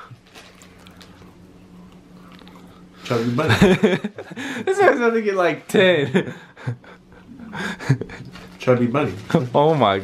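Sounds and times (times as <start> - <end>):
steady low hum: 0.0 - 10.0
wet mouth sounds: 0.6 - 3.0.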